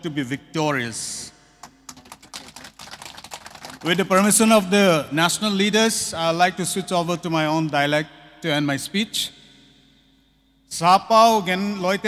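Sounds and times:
audience applause: 2.0 - 3.8
man speaking: 3.8 - 9.3, 10.7 - 12.0.

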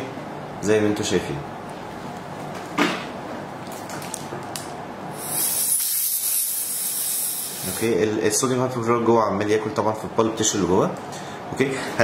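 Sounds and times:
high-pitched air hiss from dental tip: 5.1 - 8.0.

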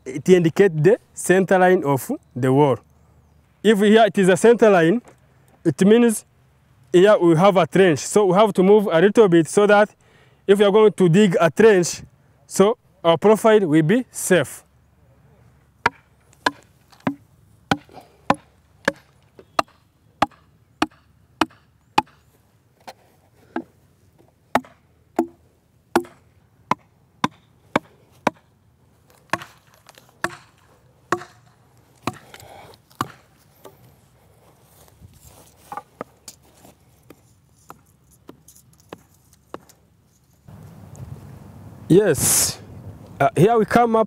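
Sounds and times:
hammer knocking wooden pegs: 15.8 - 22.2, 24.5 - 25.4, 26.0 - 28.5, 30.2 - 32.3.

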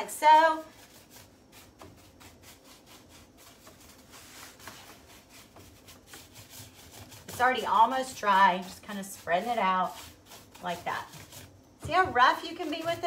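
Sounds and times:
paintbrush strokes on wood: 0.0 - 13.0.

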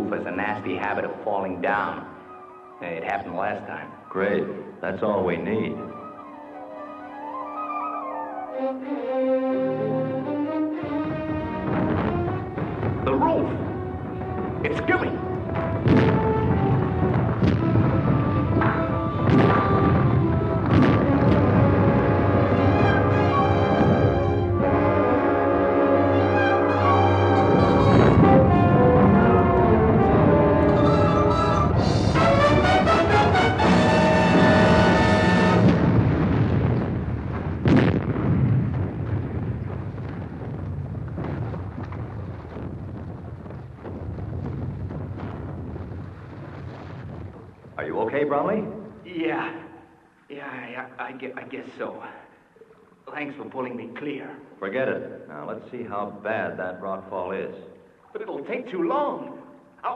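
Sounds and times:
dramatic orchestral music with brass: 5.8 - 36.0
rockfall booms and crashes: 11.0 - 25.0, 27.4 - 31.0, 31.6 - 49.0.

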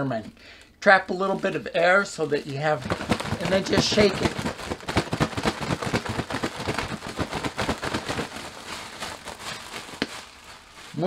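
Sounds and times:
plastic bag crinkling: 1.1 - 11.0
fries rattling in a bag: 1.3 - 11.0.

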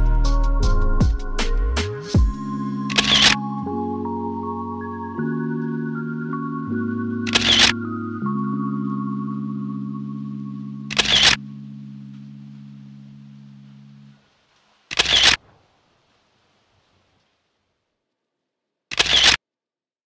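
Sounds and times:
low music chord: 0.0 - 14.2
camera shutter clicks: 2.9 - 3.4, 7.3 - 7.8, 10.9 - 11.4, 14.9 - 15.4, 18.9 - 19.4.

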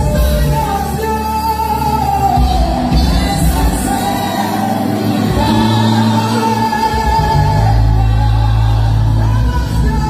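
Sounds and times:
live gospel band music: 0.0 - 10.0.

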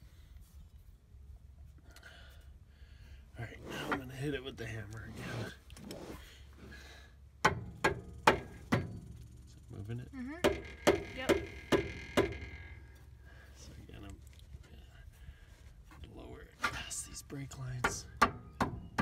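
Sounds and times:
hammer striking metal: 7.4 - 9.0.

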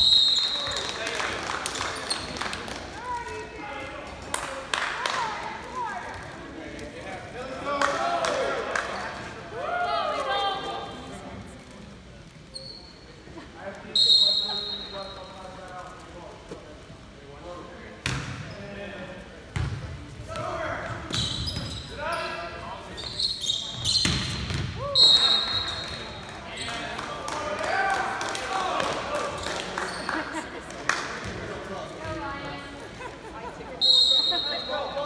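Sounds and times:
sneakers squeaking on hardwood: 21.0 - 24.7.

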